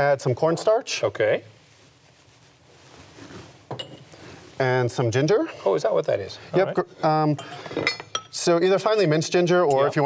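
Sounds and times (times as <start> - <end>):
handling of glass bowl: 1.6 - 4.7
glass clinking against metal bowl: 7.4 - 8.4, 9.6 - 10.0.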